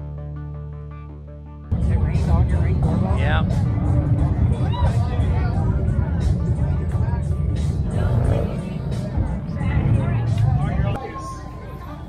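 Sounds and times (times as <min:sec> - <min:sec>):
motorcycle engines rumbling: 0:01.7 - 0:12.0
people talking: 0:01.7 - 0:12.0.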